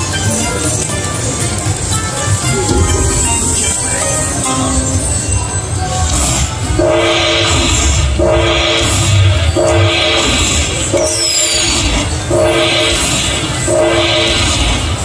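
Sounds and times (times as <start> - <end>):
slot machine horn-like chord: 2.3 - 5.8, 6.8 - 8.9, 12.3 - 14.5
high falling sweep: 2.5 - 5.6.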